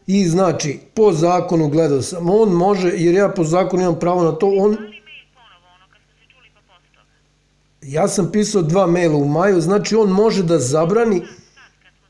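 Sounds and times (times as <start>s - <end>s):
person talking through phone earpiece: 4.4s - 7.2s.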